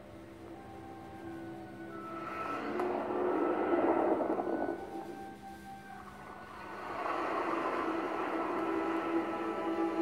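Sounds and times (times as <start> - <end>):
film soundtrack low tones: 0.0 - 10.0
rushing swell of noise: 1.9 - 10.0.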